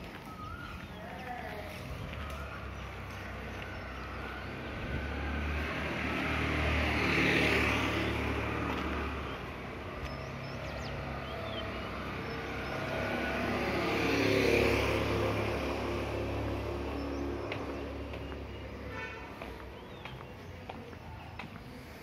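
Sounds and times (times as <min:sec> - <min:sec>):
vehicles passing: 0:00.0 - 0:22.0.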